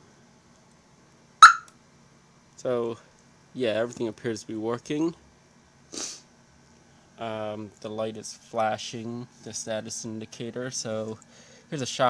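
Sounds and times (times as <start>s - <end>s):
car alarm chirp: 1.4s - 1.7s.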